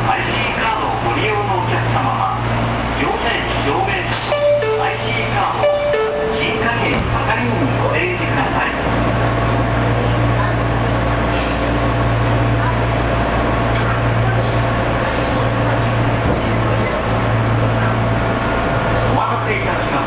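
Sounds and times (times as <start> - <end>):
train electrical hum: 1.5 - 10.5.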